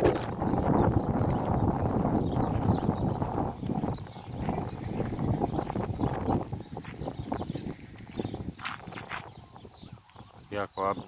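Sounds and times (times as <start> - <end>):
footsteps on dirt road: 0.0 - 10.6
low rumble of wind: 0.0 - 11.0.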